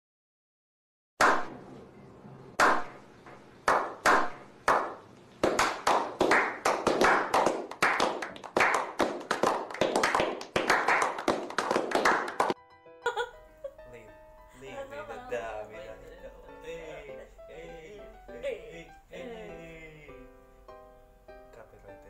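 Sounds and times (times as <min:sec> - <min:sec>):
group clapping: 0:01.2 - 0:01.5, 0:02.6 - 0:03.0, 0:03.6 - 0:12.6.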